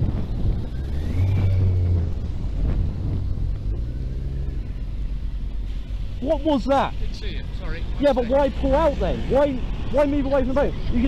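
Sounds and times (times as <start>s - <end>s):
motorcycle engine running low: 0.0s - 5.6s.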